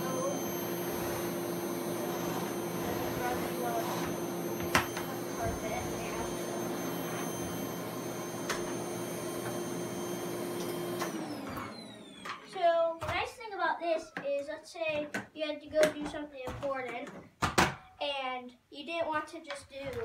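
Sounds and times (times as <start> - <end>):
vacuum cleaner running: 0.0 - 12.7.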